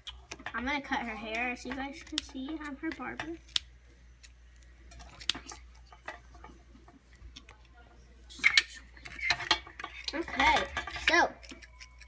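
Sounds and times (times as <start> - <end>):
plastic dolls clicking and knocking: 0.0 - 3.4.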